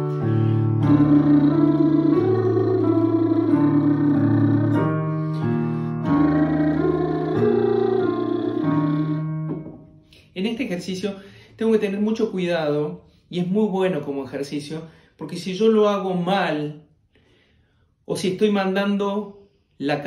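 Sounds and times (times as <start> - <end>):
digital piano chords: 0.0 - 10.2
man singing lip trill: 0.1 - 4.9, 6.0 - 9.2.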